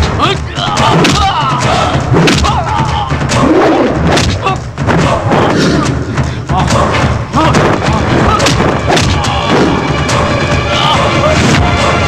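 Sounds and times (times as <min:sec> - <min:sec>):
people shouting: 0:00.0 - 0:12.0
punch and thud effects: 0:02.1 - 0:02.6, 0:03.9 - 0:05.6, 0:07.4 - 0:09.7.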